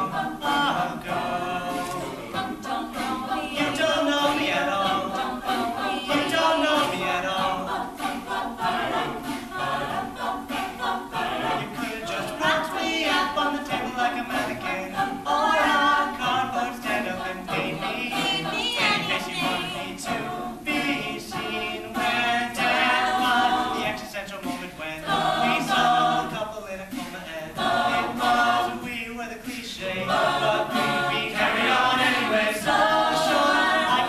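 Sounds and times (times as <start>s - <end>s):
a cappella group singing: 0.0s - 34.0s.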